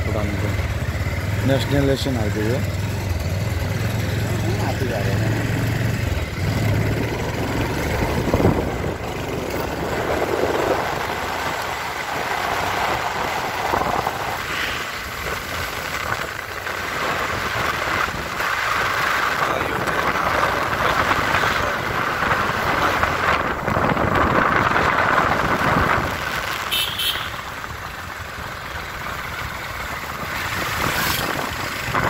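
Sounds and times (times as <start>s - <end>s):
road and traffic noise: 0.0s - 32.0s
vehicle engine hum: 0.0s - 32.0s.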